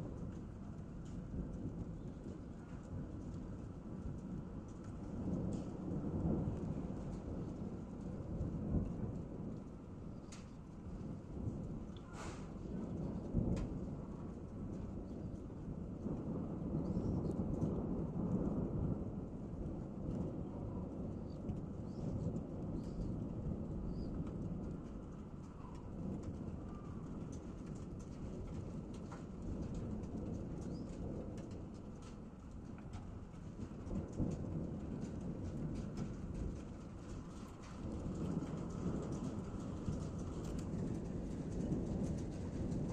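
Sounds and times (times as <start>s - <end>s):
steady rain: 0.0s - 42.9s
thunder rumbling: 0.0s - 42.9s.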